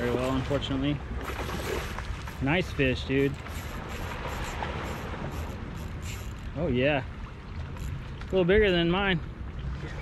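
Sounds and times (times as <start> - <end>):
moving tidal water: 0.0 - 10.0
wind: 0.0 - 10.0.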